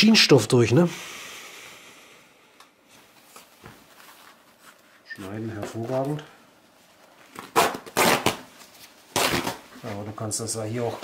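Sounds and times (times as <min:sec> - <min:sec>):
denim jeans rustling: 0:02.9 - 0:11.0.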